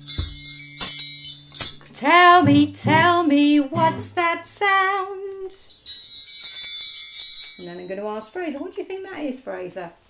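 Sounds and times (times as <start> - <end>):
wind chimes jingling: 0.0 - 2.0, 5.6 - 8.8.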